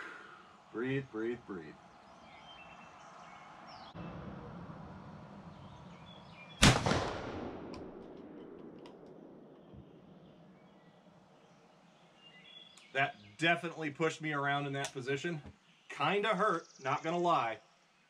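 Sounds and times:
shotgun shot with echo: 0:06.6 - 0:09.5.

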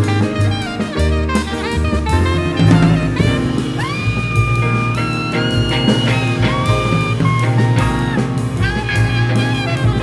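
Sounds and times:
alto saxophone melody: 0:00.0 - 0:10.0
double bass: 0:00.0 - 0:10.0
drum kit: 0:00.0 - 0:10.0
electric guitar: 0:01.5 - 0:10.0.

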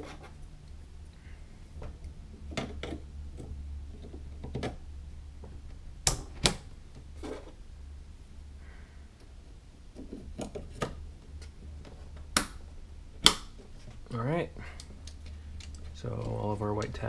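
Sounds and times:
low steady hum: 0:00.0 - 0:17.0.

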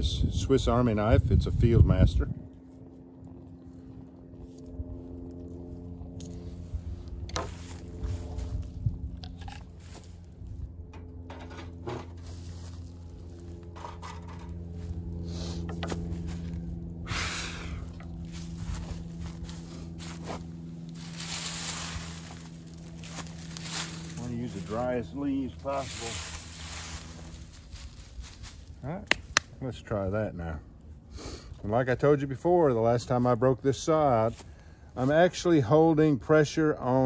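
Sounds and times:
steady low hum: 0:00.0 - 0:37.0
dry leaves rustling: 0:02.6 - 0:29.4.

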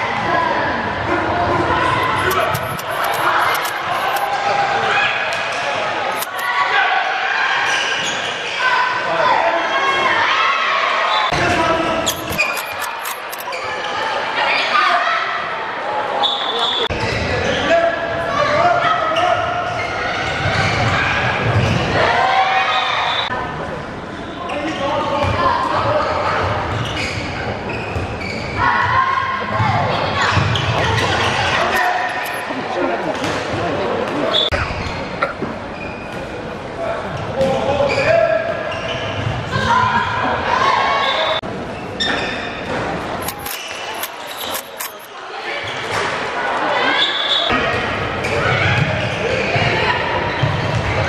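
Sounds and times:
high squeak: 0:12.1 - 0:13.6, 0:43.2 - 0:45.1.

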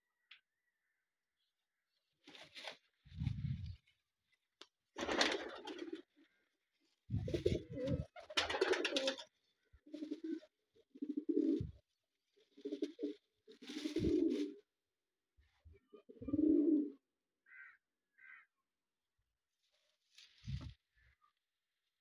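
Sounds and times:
pigeons cooing: 0:05.1 - 0:06.2, 0:07.2 - 0:11.8, 0:12.5 - 0:14.6, 0:15.8 - 0:17.0.

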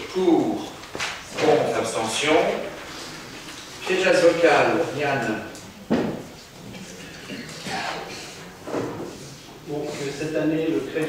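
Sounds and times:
man speaking: 0:00.0 - 0:02.8, 0:03.8 - 0:05.6, 0:09.7 - 0:11.0.

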